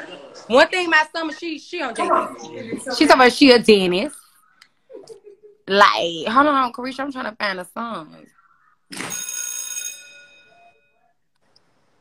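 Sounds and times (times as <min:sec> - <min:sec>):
bright bell-like chime: 0:09.0 - 0:11.0.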